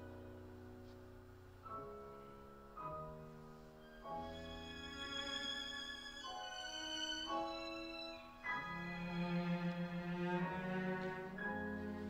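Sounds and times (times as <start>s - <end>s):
piano violin and cello playing: 1.8s - 12.0s.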